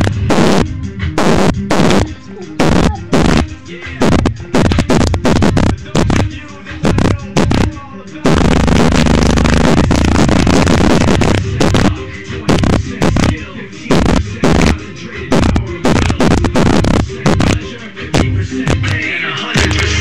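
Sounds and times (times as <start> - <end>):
loud hip hop with heavy bass: 0.0 - 20.0.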